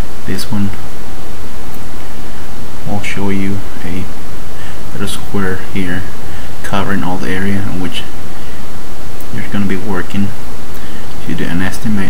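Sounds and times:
man speaking: 0:00.0 - 0:00.9, 0:02.8 - 0:08.3, 0:09.2 - 0:10.4, 0:11.2 - 0:12.0
steady background hiss: 0:00.0 - 0:12.0.

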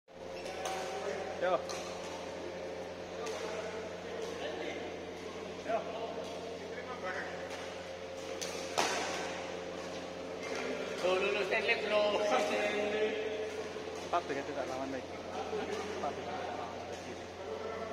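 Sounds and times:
steady hum: 0:00.1 - 0:17.9
badminton rackets striking shuttlecocks: 0:07.5 - 0:09.4.

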